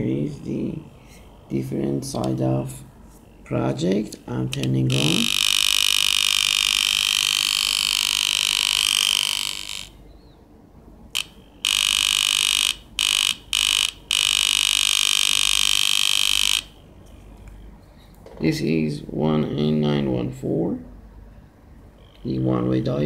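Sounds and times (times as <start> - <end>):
high-pitched electronic alarm tone: 4.8 - 10.0, 11.2 - 16.9.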